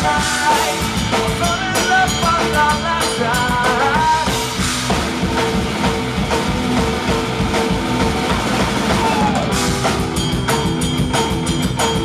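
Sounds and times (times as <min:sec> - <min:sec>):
bass guitar: 0:00.0 - 0:12.0
drum kit steady beat: 0:00.0 - 0:12.0
electric guitar: 0:00.0 - 0:12.0.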